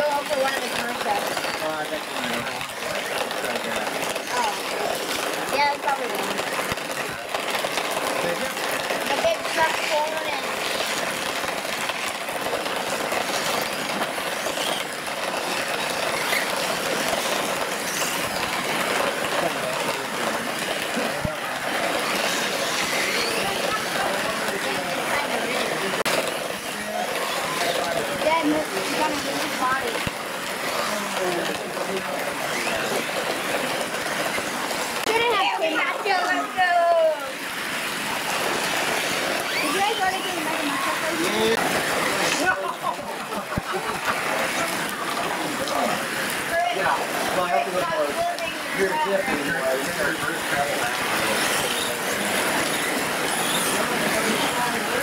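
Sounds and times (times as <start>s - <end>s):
murmur of voices: 0.0s - 55.0s
toy truck motors whining: 0.0s - 55.0s.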